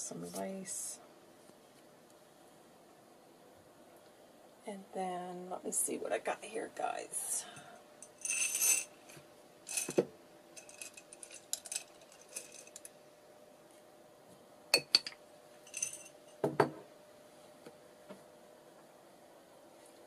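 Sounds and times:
buttons clinking and rattling: 0:08.2 - 0:08.9, 0:09.7 - 0:10.0, 0:10.6 - 0:12.9, 0:15.7 - 0:16.1
knocks of object set down: 0:16.4 - 0:16.8.

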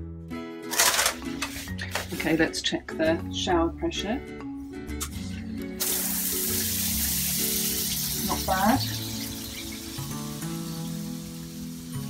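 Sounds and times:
background music: 0:00.0 - 0:12.0
shower head spraying water: 0:05.8 - 0:12.0.

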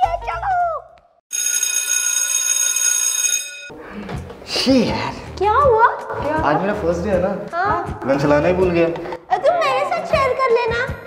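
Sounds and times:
school bell ringing: 0:01.3 - 0:03.8.

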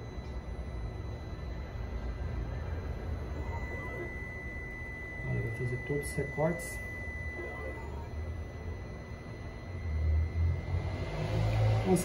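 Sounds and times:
cutting plotter motors humming: 0:00.0 - 0:12.0
steady high whine: 0:00.0 - 0:12.0.

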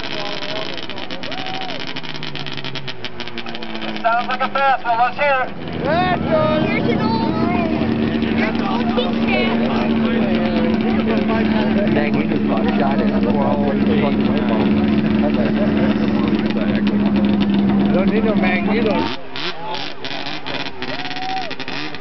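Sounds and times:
people talking: 0:00.0 - 0:01.8, 0:03.5 - 0:19.9
snowmobile engine running: 0:00.0 - 0:22.0.

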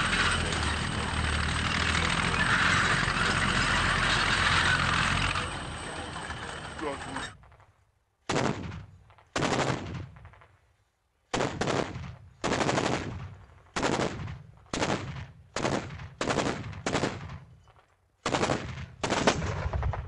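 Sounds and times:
autocannon firing bursts: 0:00.0 - 0:07.2, 0:11.3 - 0:17.3, 0:18.2 - 0:20.0.

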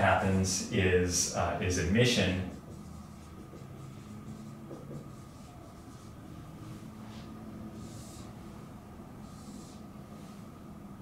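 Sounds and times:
marker writing on whiteboard: 0:02.0 - 0:10.6.

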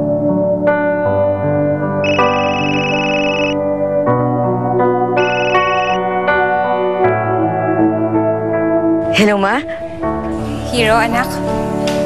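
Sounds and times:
soft background music: 0:00.0 - 0:12.0
phone ringtone melody: 0:02.0 - 0:03.6, 0:05.2 - 0:06.0.

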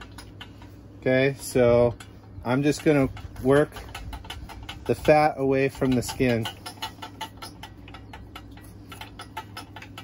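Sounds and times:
tool belt clicking: 0:02.0 - 0:10.0.

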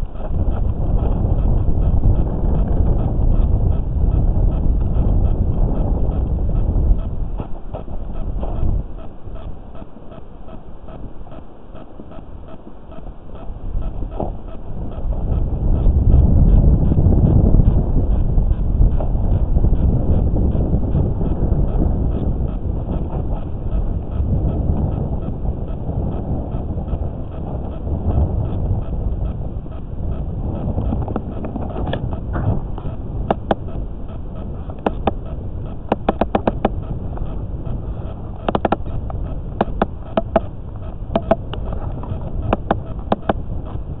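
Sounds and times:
fast electronic ticking: 0:00.0 - 0:44.0
low underwater rumbling: 0:00.0 - 0:44.0
sharp clicks: 0:30.8 - 0:43.4.

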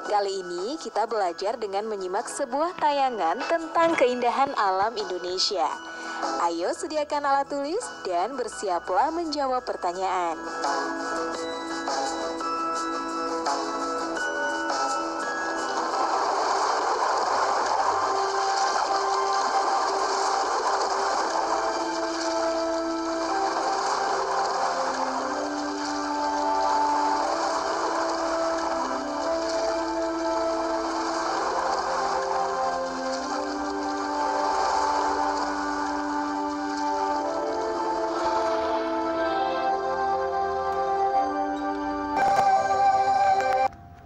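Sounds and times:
slow gentle melody: 0:00.0 - 0:44.0.

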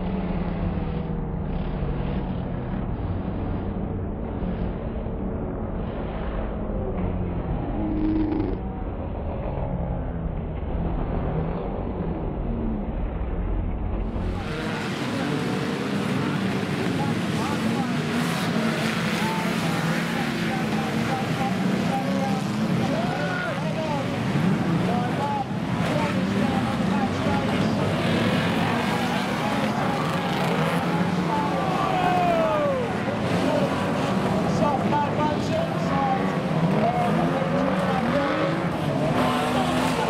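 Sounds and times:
racing car engines rumbling: 0:00.0 - 0:40.0.

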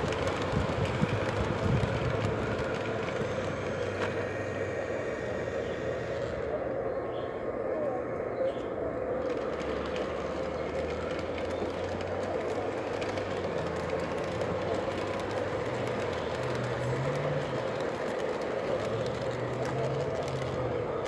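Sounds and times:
model train motor hum: 0:00.0 - 0:21.0
wheels rumbling on rails: 0:00.0 - 0:21.0.

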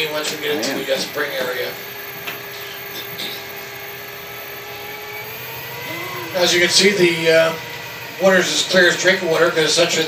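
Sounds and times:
boat motor humming: 0:00.0 - 0:10.0.

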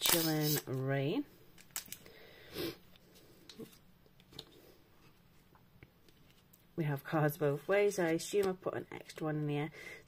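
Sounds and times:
trading cards rustling: 0:00.0 - 0:00.6
woman speaking: 0:00.0 - 0:01.3, 0:06.8 - 0:09.7.

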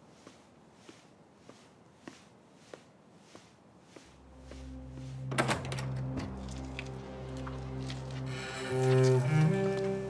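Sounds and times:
soft footsteps: 0:00.0 - 0:05.4
low string music: 0:03.3 - 0:10.0.

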